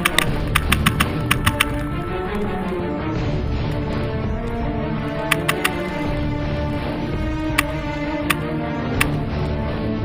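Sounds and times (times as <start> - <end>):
paintball marker firing: 0.0 - 1.9, 5.2 - 6.0, 7.5 - 9.2
background music: 0.0 - 10.0.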